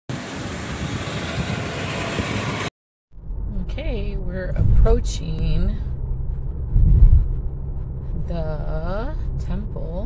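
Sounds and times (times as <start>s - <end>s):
wind and road noise inside car: 3.2s - 10.0s.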